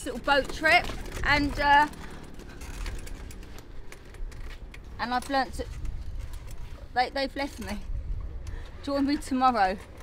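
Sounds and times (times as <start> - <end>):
wheels rolling rumble: 0.0 - 10.0
wheelchair metallic clicks: 0.1 - 6.7.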